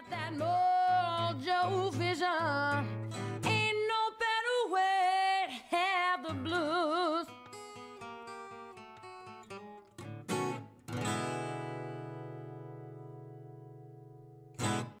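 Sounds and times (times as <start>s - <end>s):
guitar jingle: 7.3s - 15.0s.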